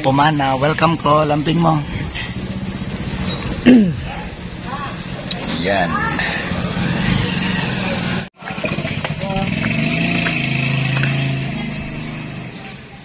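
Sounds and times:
voices: 0.0s - 13.0s
motorcycle engine running: 0.9s - 13.0s.

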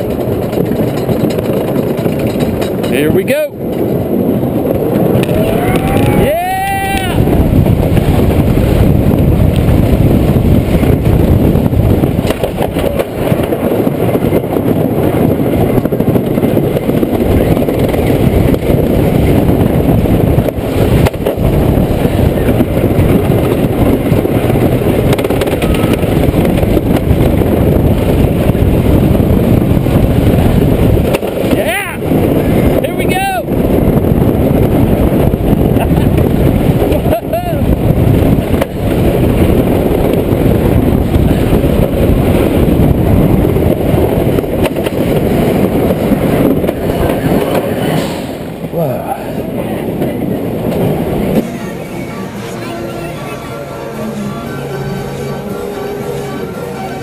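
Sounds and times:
wind rush on microphone: 0.0s - 56.9s
roller coaster rumble and rattle: 0.0s - 57.0s
rising and falling cries: 5.3s - 7.3s.

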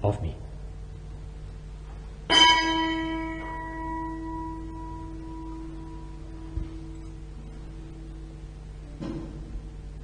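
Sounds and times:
altar bell ringing: 2.3s - 8.4s.

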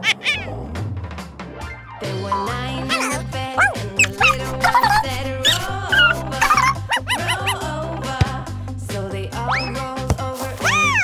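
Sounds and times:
background music: 0.0s - 11.0s
small dog barking: 2.9s - 7.6s.

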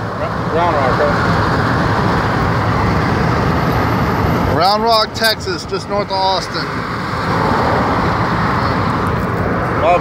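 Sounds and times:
road and wind noise inside car: 0.0s - 10.0s.

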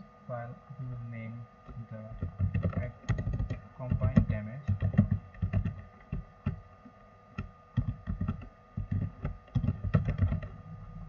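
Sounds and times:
typing on computer keyboard: 2.1s - 6.6s, 7.4s - 10.6s.

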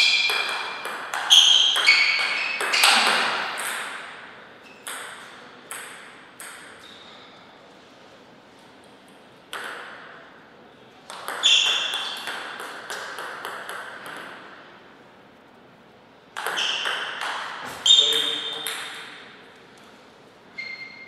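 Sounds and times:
table tennis ball clicking: 11.1s - 14.4s, 16.4s - 17.4s.

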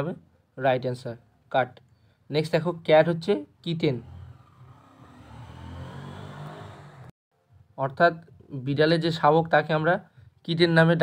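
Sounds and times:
low engine-like hum: 3.8s - 7.1s.

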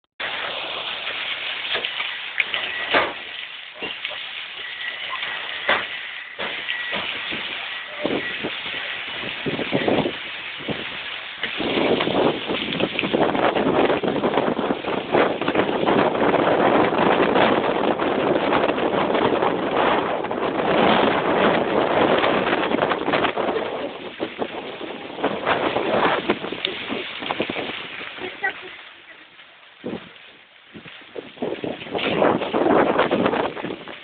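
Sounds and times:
hail on tarmac and vehicles: 0.2s - 34.0s.

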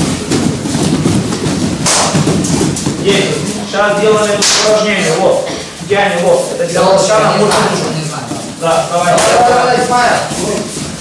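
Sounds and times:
bare feet thudding on mats: 0.0s - 11.0s
sharp swish: 1.8s - 2.6s, 4.3s - 4.8s.

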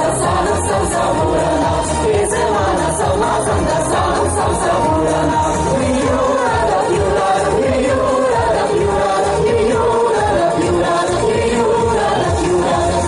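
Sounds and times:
amplified music with steady beat: 0.0s - 13.0s
group singing pop song: 0.0s - 13.0s.

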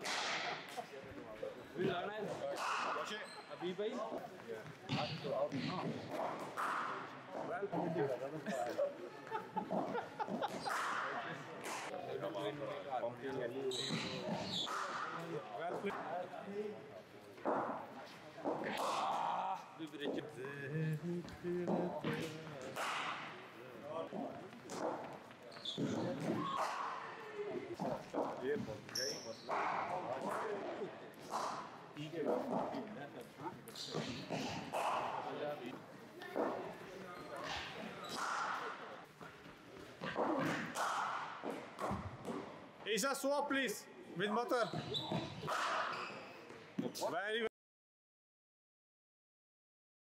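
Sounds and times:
voices talking indoors: 0.0s - 47.5s
background voices: 18.7s - 23.5s.

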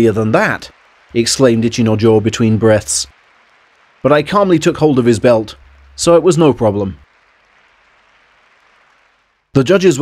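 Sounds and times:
faint applause: 0.0s - 10.0s.

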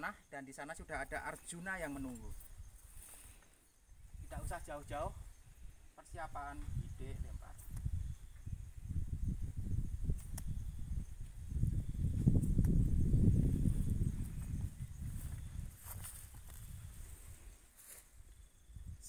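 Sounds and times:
low rumbling on microphone: 6.6s - 15.8s.

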